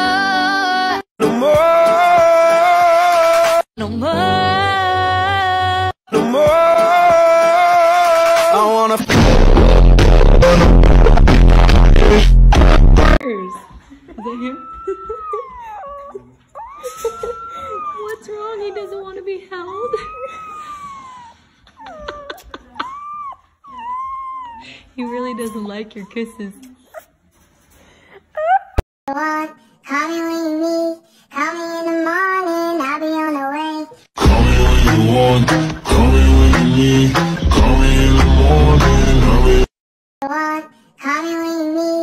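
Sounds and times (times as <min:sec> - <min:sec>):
high voice singing wordless tune: 0:00.0 - 0:09.2, 0:29.1 - 0:42.0
puppy whining: 0:13.2 - 0:27.4, 0:28.3 - 0:28.8.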